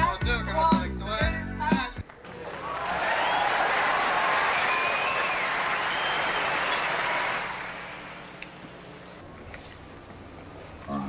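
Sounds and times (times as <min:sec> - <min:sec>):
audience applauding: 0:02.1 - 0:08.6
whistles: 0:02.5 - 0:08.2.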